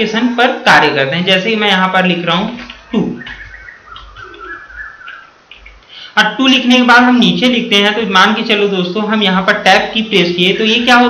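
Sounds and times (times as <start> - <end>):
bird whistling faintly: 2.8 - 5.8.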